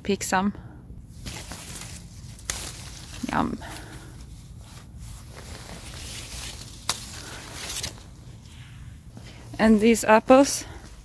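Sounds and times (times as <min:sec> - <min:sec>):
leaves and branches rustling: 0:01.0 - 0:11.0.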